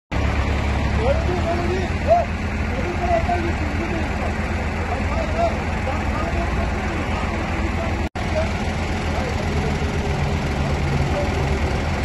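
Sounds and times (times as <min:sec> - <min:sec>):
people calling out: 0:01.2 - 0:08.0.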